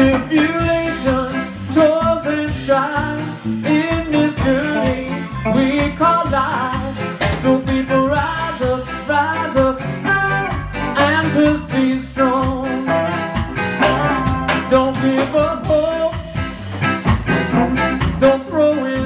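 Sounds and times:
guitar with bending notes: 0.0 - 19.0
steady drum beat: 0.0 - 19.0
walking bass: 0.0 - 19.0.

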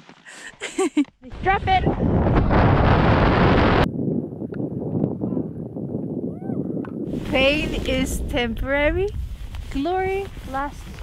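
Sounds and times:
wind buffeting microphone: 1.3 - 11.0.

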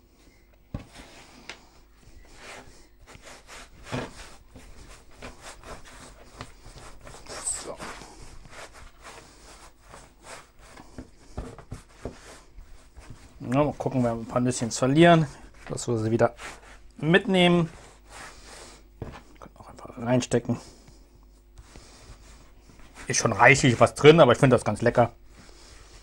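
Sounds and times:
hands rubbing dough on wood: 0.7 - 19.4, 20.3 - 26.0.

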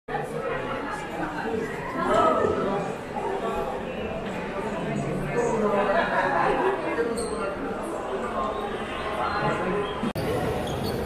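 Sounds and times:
crowd murmur: 0.1 - 11.0.

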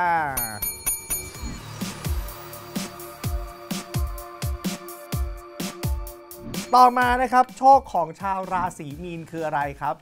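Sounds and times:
metal desk bell ringing: 0.3 - 2.2, 6.7 - 8.8
electronic music with low beats: 0.3 - 10.0.

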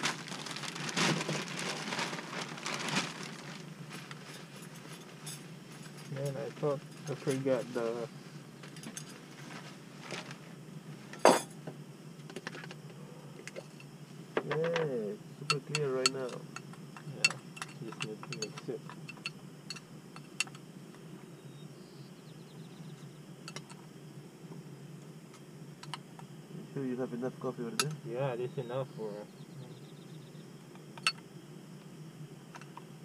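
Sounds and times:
cup and plastic packets clinking: 17.0 - 19.3.

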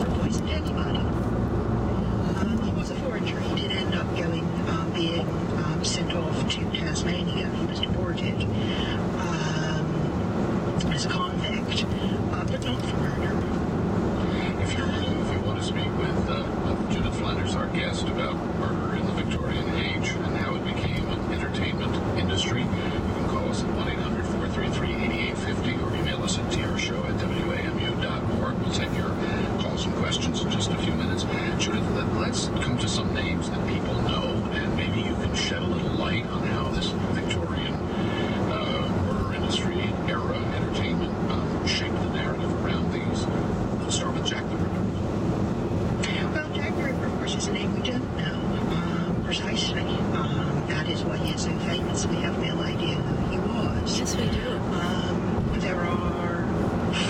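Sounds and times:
tyre and road noise in car: 0.0 - 57.0.

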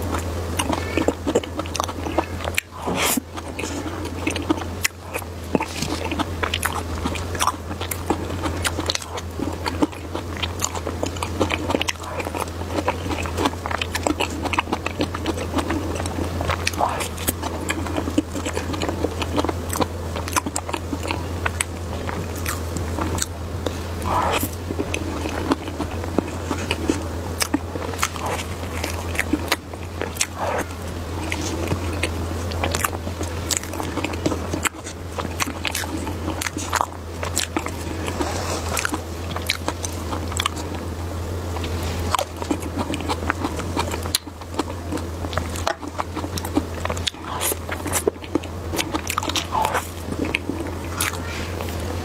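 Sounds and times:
chewing and mouth sounds: 0.0 - 52.0
low hum: 0.0 - 52.0.

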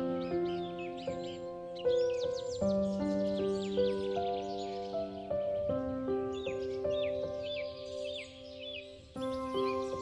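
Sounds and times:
soft piano music: 0.0 - 10.0.

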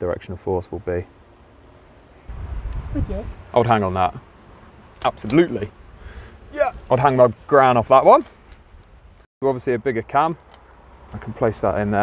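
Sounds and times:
wind buffeting microphone: 2.3 - 9.2.

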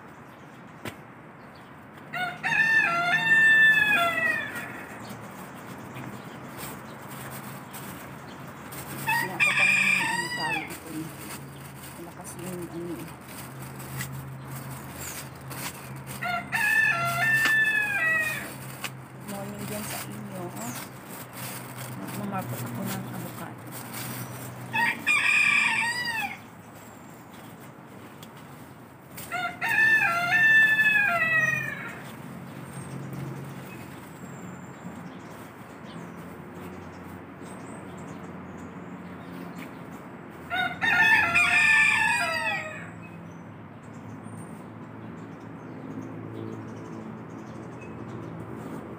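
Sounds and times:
rooster crowing: 2.1 - 5.0, 9.0 - 10.7, 16.1 - 18.5, 24.7 - 26.5, 29.2 - 32.0, 40.5 - 43.0.

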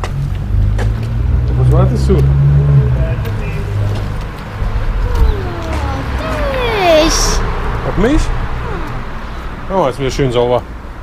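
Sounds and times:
street traffic rumble: 0.0 - 11.0
child calling out: 5.0 - 7.5, 8.6 - 9.2.

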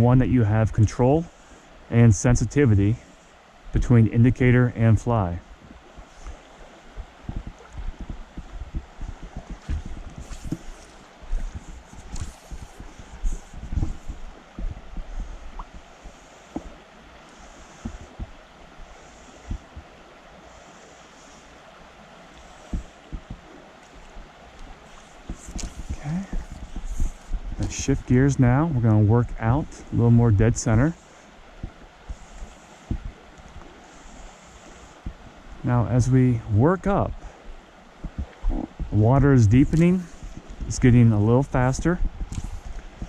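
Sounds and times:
wind rumbling on microphone: 0.0 - 20.6, 21.2 - 43.0
stream running over stones: 0.0 - 43.0.

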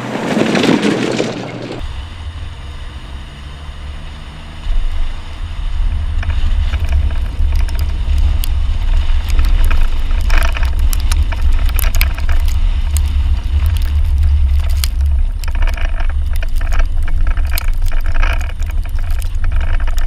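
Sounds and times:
snow and ice crunching under tyre: 0.0 - 20.0
wind and road rumble: 0.0 - 20.0.

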